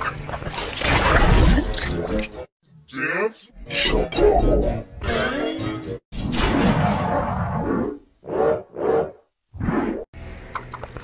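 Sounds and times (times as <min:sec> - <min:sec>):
warbling processed voice and music: 0:00.0 - 0:06.0.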